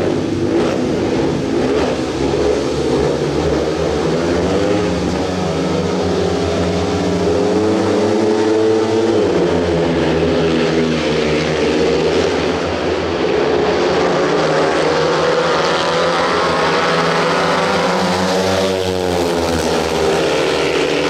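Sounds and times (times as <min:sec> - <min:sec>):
motorcycles racing: 0:00.0 - 0:21.0.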